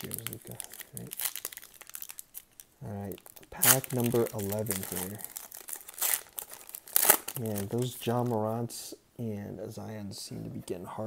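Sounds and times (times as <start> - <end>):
foil wrapper crinkling: 0.0 - 8.4.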